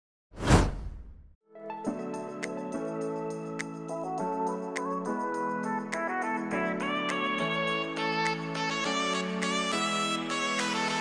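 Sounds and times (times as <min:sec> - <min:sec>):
whoosh sound effect: 0:00.4 - 0:01.2.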